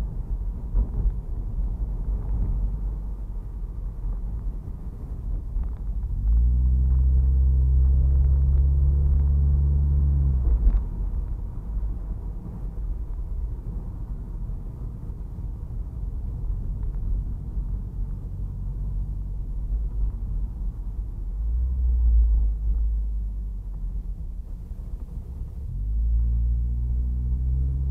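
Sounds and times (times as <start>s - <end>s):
car engine drone: 0.0s - 27.9s
road rumble inside car: 0.0s - 27.9s.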